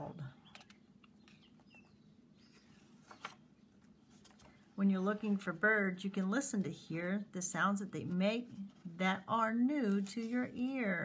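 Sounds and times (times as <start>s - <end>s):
faint steady hum: 0.0s - 11.0s
book page rustling: 0.5s - 5.5s, 8.0s - 10.9s.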